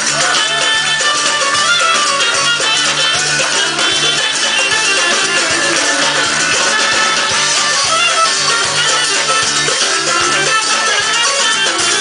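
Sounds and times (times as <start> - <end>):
band playing upbeat music: 0.0 - 12.0
plucked guitars: 0.0 - 12.0
quick steady beat: 0.0 - 12.0.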